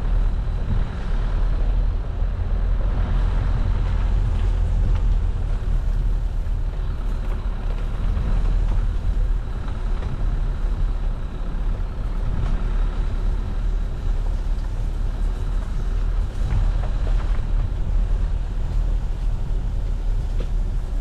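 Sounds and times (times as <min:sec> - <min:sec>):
car engine and tyre rumble: 0:00.0 - 0:21.0.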